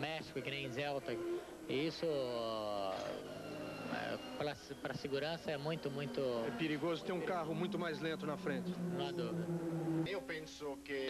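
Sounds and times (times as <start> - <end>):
man speaking: 0.0 - 3.3, 3.9 - 11.0
man's drawn-out hesitation sound: 3.9 - 10.3.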